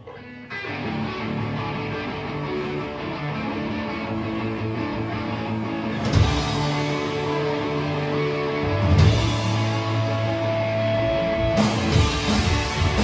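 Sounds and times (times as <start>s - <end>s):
electric guitar: 0.0s - 13.0s
rock band playing live: 0.0s - 13.0s.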